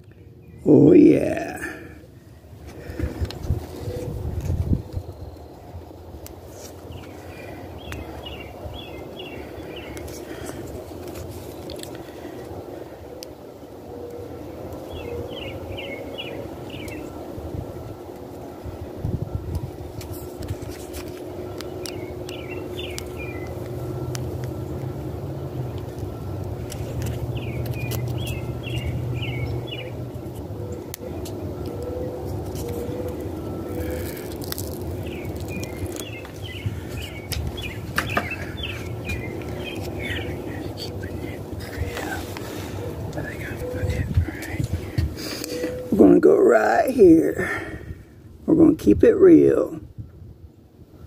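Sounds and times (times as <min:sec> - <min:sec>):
bird chirping: 0:00.0 - 0:01.5, 0:06.8 - 0:10.5, 0:14.8 - 0:17.2, 0:21.3 - 0:24.8, 0:26.7 - 0:47.1
steady low rumble: 0:00.0 - 0:51.0.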